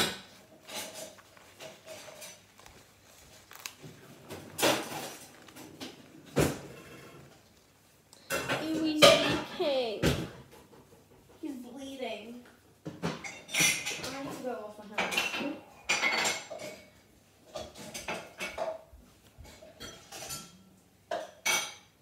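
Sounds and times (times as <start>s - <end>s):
paper towel crumpling: 0.3s - 7.7s
girl's voice: 8.6s - 10.1s, 11.4s - 12.4s.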